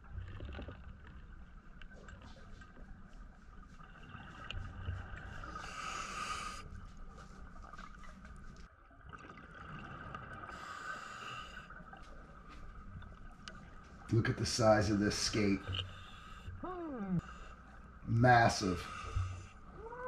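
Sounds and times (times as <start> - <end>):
diver breathing through regulator: 5.4 - 6.7.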